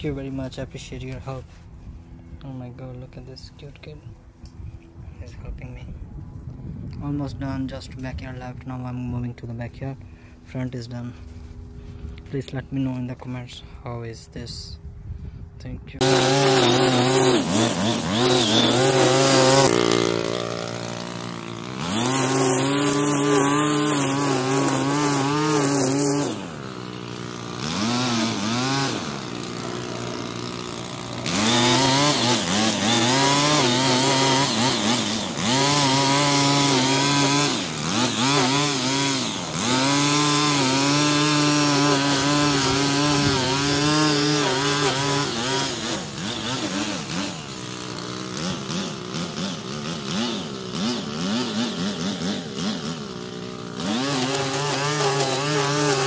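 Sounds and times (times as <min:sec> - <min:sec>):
string trimmer cutting grass: 0:00.0 - 0:13.6, 0:15.2 - 0:56.0.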